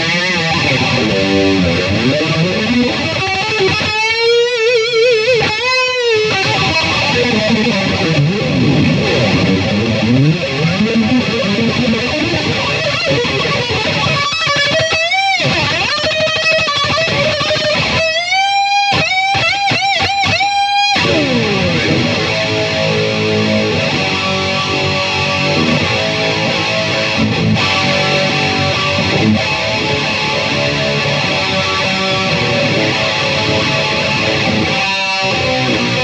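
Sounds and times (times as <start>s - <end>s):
electric guitar solo: 0.0s - 36.0s.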